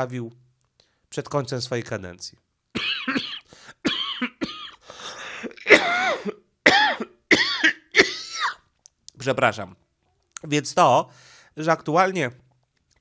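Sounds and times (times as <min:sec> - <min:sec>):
man coughing: 0:02.8 - 0:08.6.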